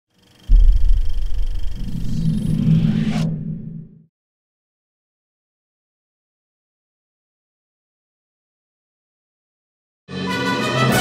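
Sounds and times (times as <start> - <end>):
deep rumbling: 0.5 - 4.0
rising whoosh: 0.5 - 4.1.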